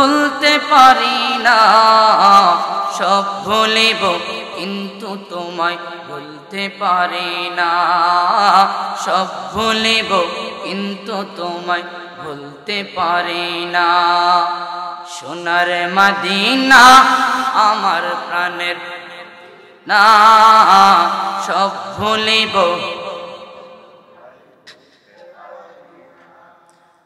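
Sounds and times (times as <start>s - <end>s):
man singing into a microphone: 0.0s - 24.0s.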